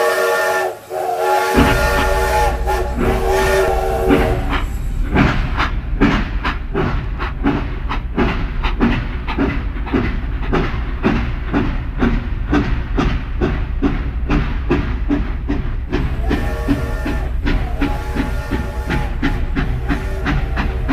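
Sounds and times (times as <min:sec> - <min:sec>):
toy train electronic whistle: 0:00.0 - 0:04.6, 0:16.2 - 0:20.9
train clicking on plastic track: 0:01.4 - 0:20.9
toy train motor: 0:16.0 - 0:20.9.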